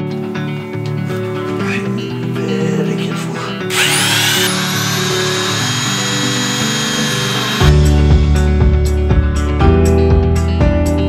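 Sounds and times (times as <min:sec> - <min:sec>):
background music: 0:00.0 - 0:11.0
power file sanding metal: 0:03.7 - 0:07.8.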